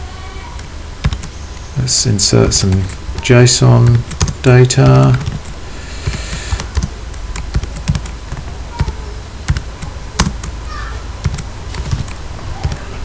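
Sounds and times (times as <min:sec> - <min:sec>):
keyboard keys tapping: 0:01.0 - 0:01.3, 0:03.8 - 0:10.6, 0:11.2 - 0:12.9.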